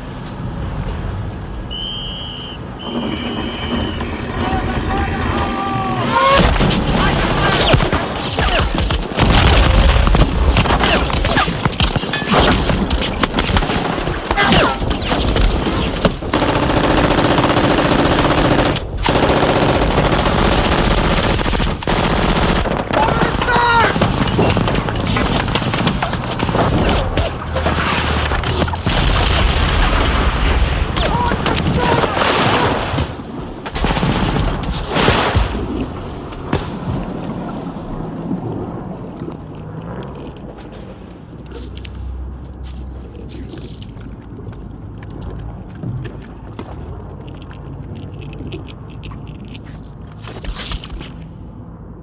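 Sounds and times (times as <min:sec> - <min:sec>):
machine-gun fire: 0:06.7 - 0:27.2.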